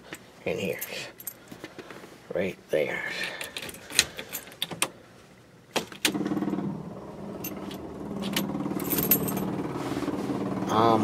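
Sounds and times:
car keys jangling: 7.4s - 9.4s.

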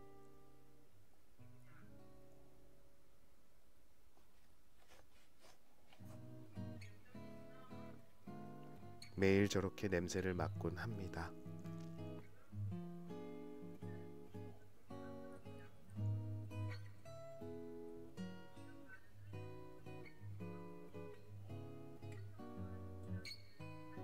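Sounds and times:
acoustic guitar gentle melody: 0.0s - 3.2s, 4.4s - 24.0s.

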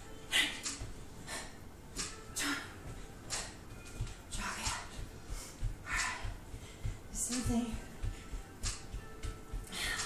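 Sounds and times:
bare feet thudding on mat: 2.9s - 10.0s.

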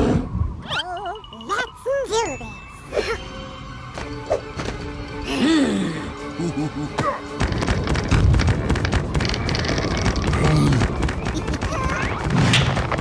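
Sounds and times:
cartoon music: 0.6s - 3.2s.

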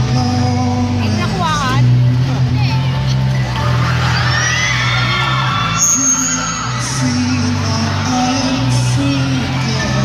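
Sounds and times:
live music with low chord: 0.0s - 10.0s.

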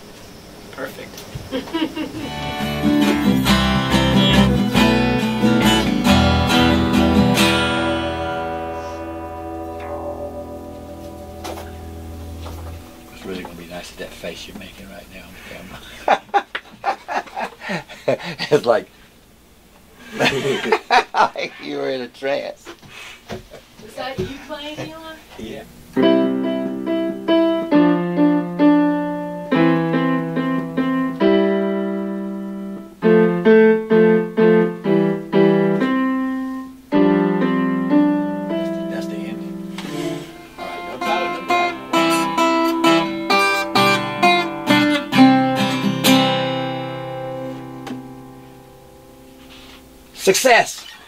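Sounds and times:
electronic keyboard piano tune: 2.2s - 13.7s, 26.0s - 49.2s.

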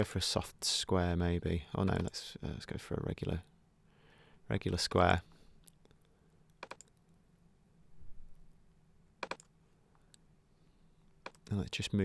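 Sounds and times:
computer mouse clicks: 5.6s - 7.0s, 9.2s - 9.5s, 11.2s - 11.5s.

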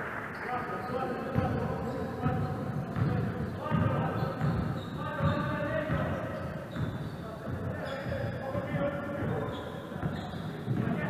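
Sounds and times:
basketball dribbled on wooden floor: 1.3s - 11.0s.

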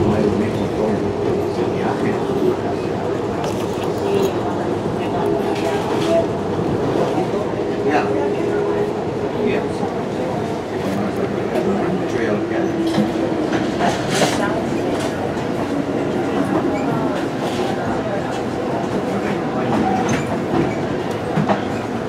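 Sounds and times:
train rumbling on track: 0.0s - 22.0s.

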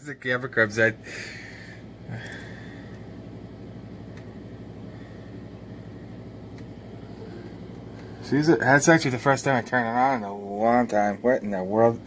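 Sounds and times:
low constant rumble: 0.0s - 12.0s.

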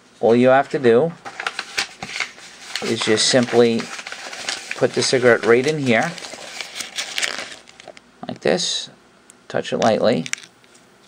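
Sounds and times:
paper crinkling and rustling: 1.2s - 8.0s.

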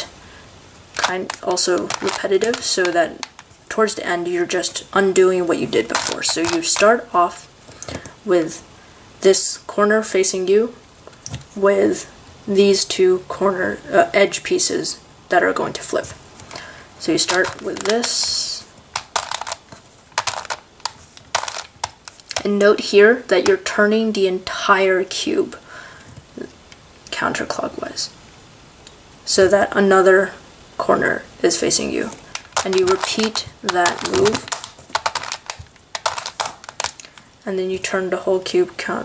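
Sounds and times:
plastic puzzle clicking: 1.0s - 3.5s, 5.8s - 6.9s, 17.2s - 18.2s, 18.9s - 22.4s, 32.2s - 37.2s.

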